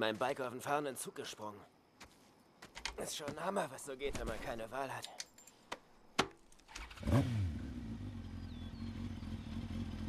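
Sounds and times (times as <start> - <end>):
motorcycle engine starting and idling: 6.7 - 10.0.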